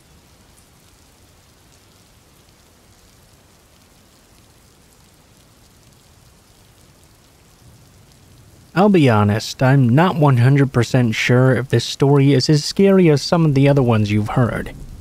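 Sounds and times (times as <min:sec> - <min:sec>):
faint steady rain: 0:00.0 - 0:15.0.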